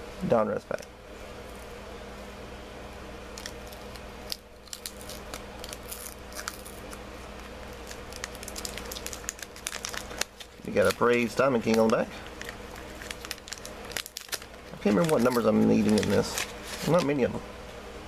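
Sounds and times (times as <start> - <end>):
wax paper wrapper crinkling: 3.3 - 17.4.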